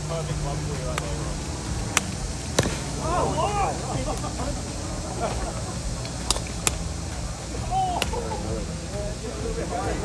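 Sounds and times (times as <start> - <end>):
background chatter: 0.0 - 10.0
golf clubs striking balls: 0.0 - 10.0
low outdoor rumble: 0.0 - 10.0.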